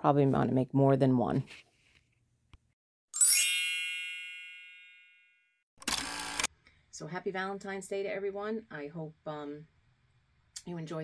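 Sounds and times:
bright chime ringing: 0:03.2 - 0:05.5.

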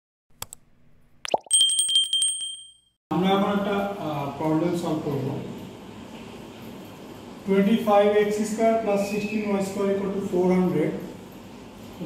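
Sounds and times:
notification bell ringing: 0:01.3 - 0:02.9.

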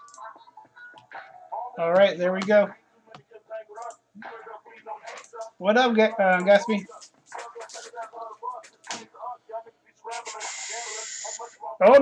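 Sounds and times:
quiet broken voices: 0:00.0 - 0:12.0.

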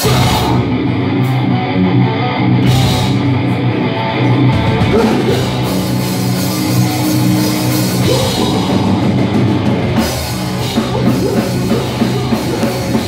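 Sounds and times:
bass guitar: 0:00.0 - 0:13.0
distorted electric guitars: 0:00.0 - 0:13.0
drum kit: 0:00.0 - 0:13.0.

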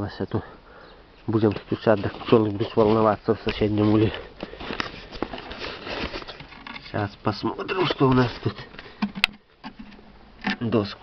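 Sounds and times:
soft rustling: 0:01.2 - 0:10.1.

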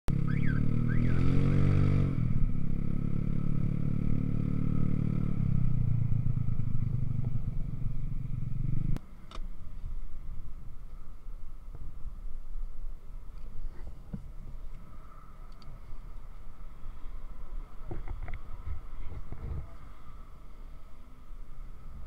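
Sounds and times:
motorcycle engine running: 0:00.1 - 0:09.0
uneven rumble: 0:00.8 - 0:09.0.

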